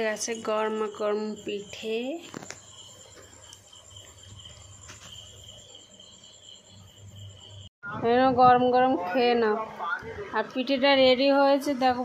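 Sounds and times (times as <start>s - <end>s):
cricket trilling: 0.0s - 7.7s.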